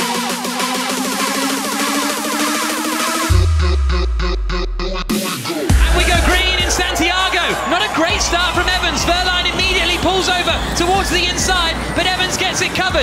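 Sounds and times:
electric race cars whining: 0:07.4 - 0:13.0.

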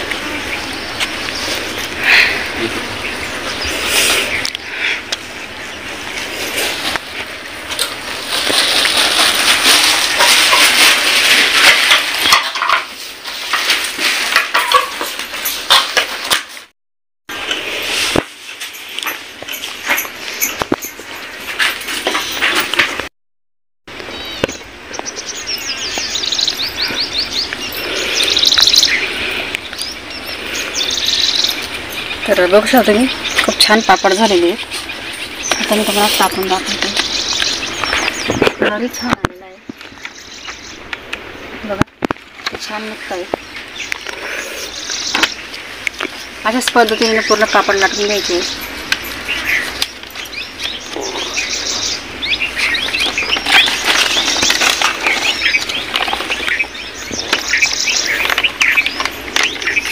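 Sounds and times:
birds chirping: 0:00.0 - 0:16.4, 0:18.7 - 0:23.0, 0:23.9 - 0:59.9
village ambience: 0:00.0 - 0:16.4, 0:26.5 - 0:59.9.

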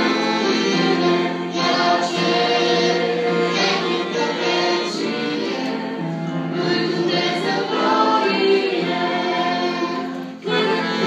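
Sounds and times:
group singing in harmony: 0:00.0 - 0:11.0.

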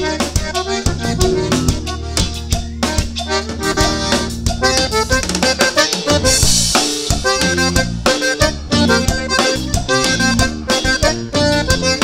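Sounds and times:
bass: 0:00.0 - 0:12.0
button accordion quick notes: 0:00.0 - 0:12.0
drum kit steady beat: 0:00.0 - 0:12.0.

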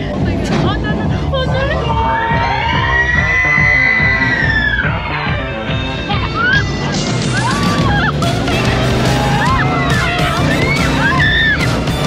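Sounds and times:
background music: 0:00.0 - 0:12.0
dune buggy engine rumble: 0:00.0 - 0:12.0
riders screaming and whooping: 0:01.6 - 0:05.6, 0:06.2 - 0:12.0.

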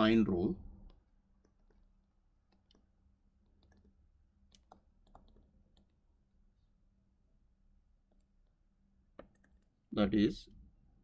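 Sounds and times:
stylus tapping on tablet screen: 0:00.9 - 0:06.0.

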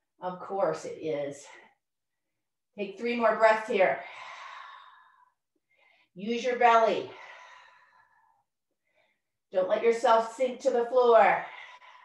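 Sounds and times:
faint inhale: 0:04.0 - 0:06.2, 0:07.1 - 0:09.3, 0:11.4 - 0:12.0.

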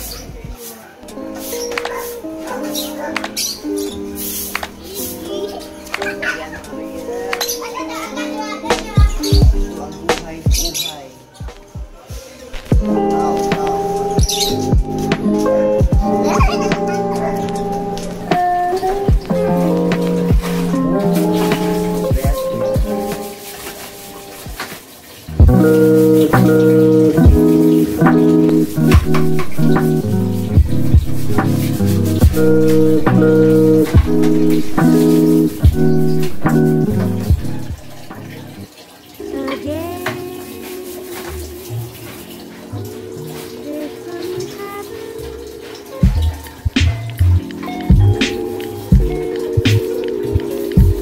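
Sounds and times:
background music repeated chords: 0:11.4 - 0:39.3, 0:40.5 - 0:51.0.

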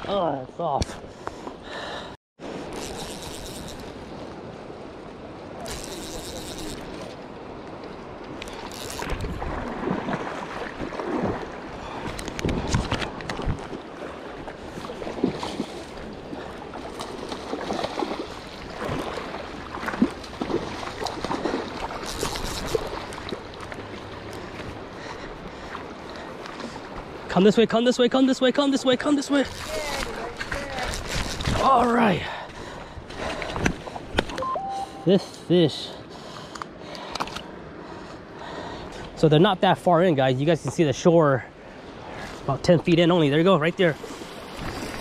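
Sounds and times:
river water flowing and splashing: 0:00.0 - 0:45.0
wind noise: 0:08.4 - 0:13.8, 0:29.5 - 0:31.8.

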